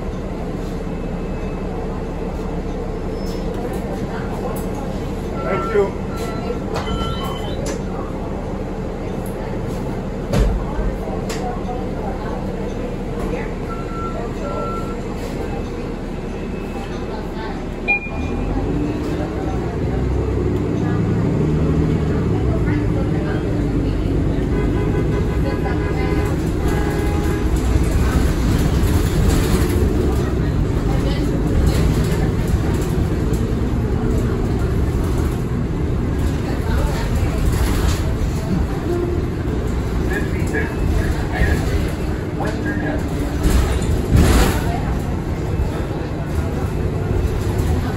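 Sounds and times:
bus engine and road noise: 0.0s - 47.9s
faint passenger voices: 0.0s - 47.9s.

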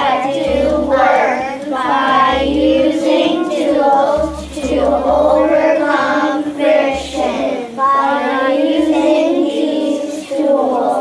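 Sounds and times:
children singing in unison: 0.0s - 11.0s.

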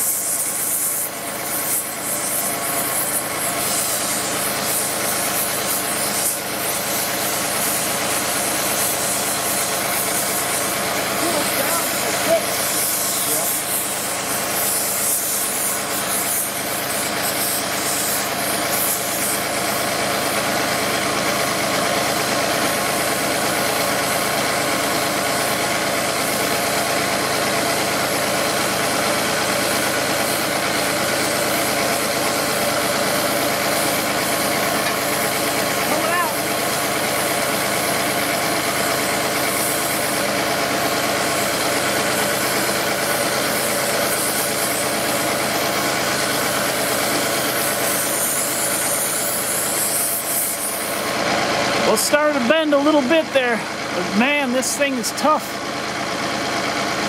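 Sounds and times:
gas torch rushing: 0.0s - 57.0s
engine idling: 0.1s - 57.0s.

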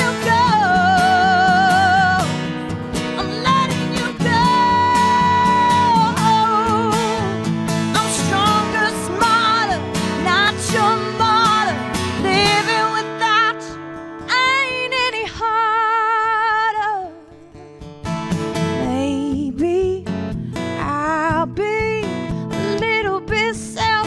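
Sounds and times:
woman singing with vibrato: 0.0s - 17.7s, 18.8s - 24.0s
strummed acoustic guitar: 0.0s - 24.0s.

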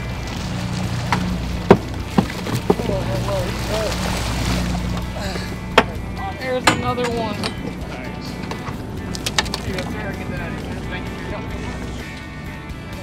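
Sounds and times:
boat engine drone: 0.0s - 13.0s
water noise: 0.0s - 13.0s
wind: 0.0s - 13.0s.

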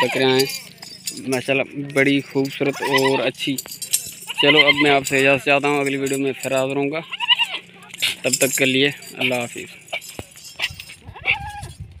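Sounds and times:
goat bleating: 0.0s - 0.5s, 2.6s - 3.4s, 4.2s - 6.2s, 7.0s - 8.2s, 9.8s - 11.7s.

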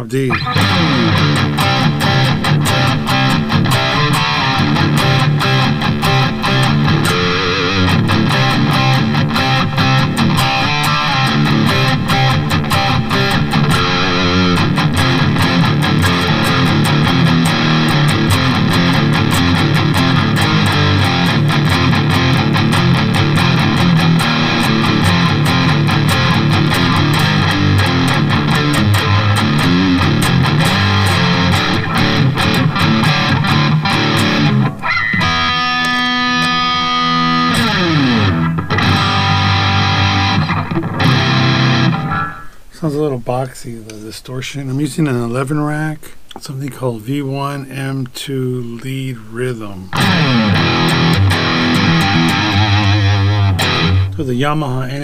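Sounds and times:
distorted electric guitar riffing: 0.0s - 42.8s, 49.3s - 55.0s
programmed drum beat: 7.8s - 34.6s.

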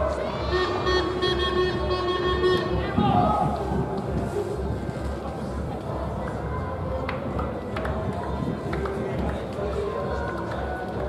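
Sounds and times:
distant indistinct voices: 0.0s - 11.0s.

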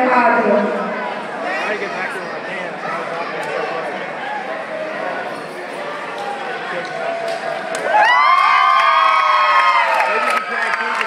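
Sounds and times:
murmur of voices: 0.0s - 11.0s
spectators shouting and cheering: 0.0s - 11.0s.

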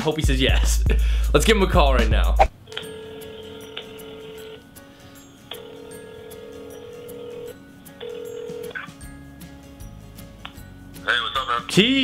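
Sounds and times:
telephone ringback tone: 2.6s - 4.7s, 5.5s - 9.0s.

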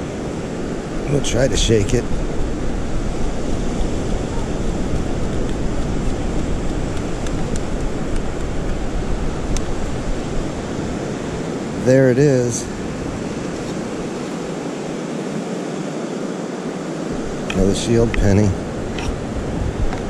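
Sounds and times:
ocean surf: 0.0s - 20.0s
steady wind: 0.0s - 20.0s.

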